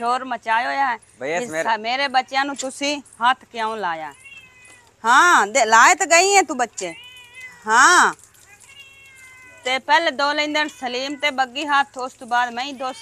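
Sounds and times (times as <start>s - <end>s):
cat meowing loudly: 4.1s - 5.0s, 6.9s - 9.7s, 12.5s - 13.0s.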